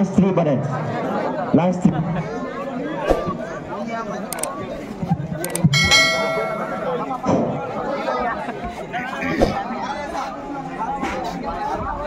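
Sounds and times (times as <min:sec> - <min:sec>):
crowd chatter: 0:00.0 - 0:12.0
sharp mouse clicks: 0:04.3 - 0:04.5, 0:05.4 - 0:05.7
bell ding: 0:05.6 - 0:07.2.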